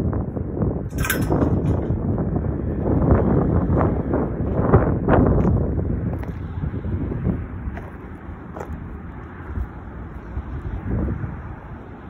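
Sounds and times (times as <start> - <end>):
wind buffeting microphone: 0.0 - 12.0
footsteps on dirt and gravel: 2.7 - 11.3.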